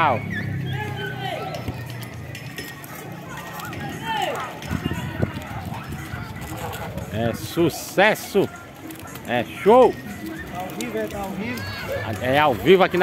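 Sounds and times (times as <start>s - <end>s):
background chatter: 0.0s - 13.0s
children calling and shouting: 0.0s - 13.0s.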